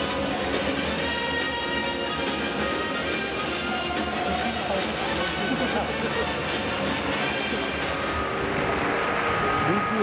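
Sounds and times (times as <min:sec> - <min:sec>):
stadium crowd voices: 0:00.0 - 0:10.0.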